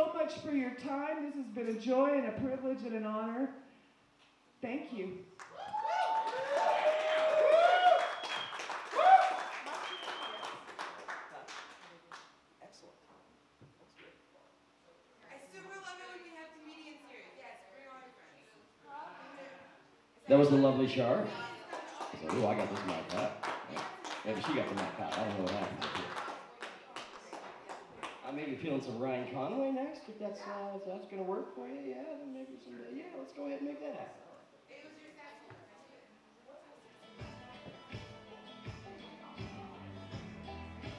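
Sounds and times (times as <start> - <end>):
quiet room noise: 0.0 - 38.2
audience clapping and cheering: 5.4 - 12.3, 21.4 - 28.5.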